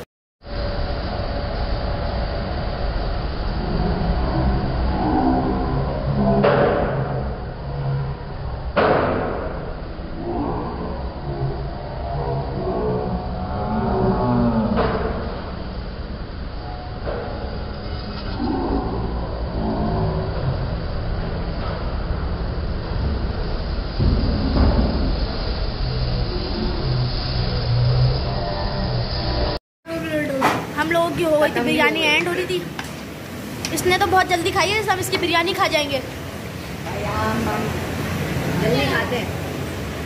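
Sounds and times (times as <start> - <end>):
low rumble: 0.0 - 29.6
indistinct voices: 3.4 - 8.4, 10.2 - 15.6, 16.6 - 21.8, 24.0 - 39.4.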